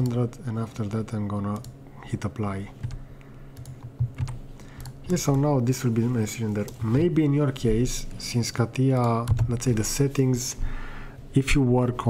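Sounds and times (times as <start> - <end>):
computer clicks: 0.0 - 1.8, 2.8 - 5.5, 8.8 - 10.2
low electrical hum: 0.0 - 12.0.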